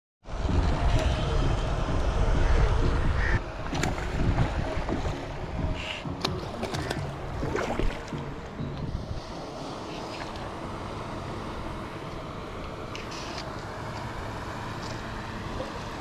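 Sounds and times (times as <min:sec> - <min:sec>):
wind buffeting microphone: 0:00.3 - 0:09.4
fish splashing in water: 0:06.2 - 0:08.2.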